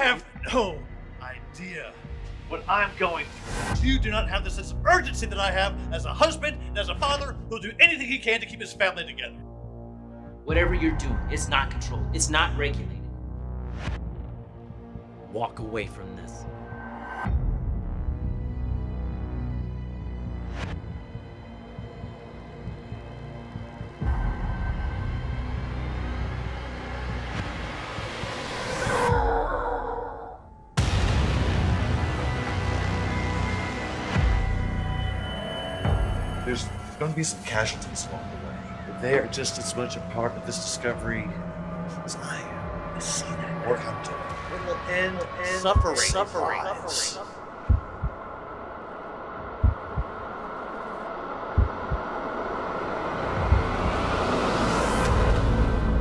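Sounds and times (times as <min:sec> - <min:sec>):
low rumbling drone: 0:16.4 - 0:56.0
heartbeat double thumps: 0:45.6 - 0:46.4, 0:47.6 - 0:48.3, 0:49.5 - 0:50.2, 0:51.5 - 0:52.2, 0:53.3 - 0:54.2.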